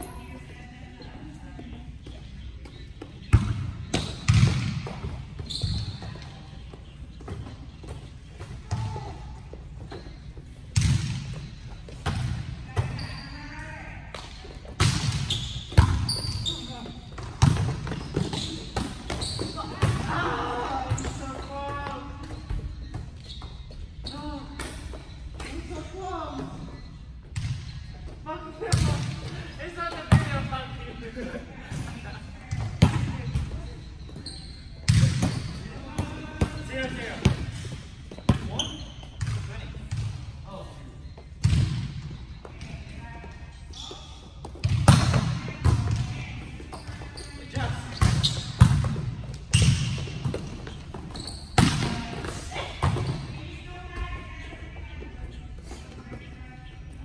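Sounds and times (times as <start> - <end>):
shoes squeaking on court: 0.0 - 30.6, 31.6 - 57.0.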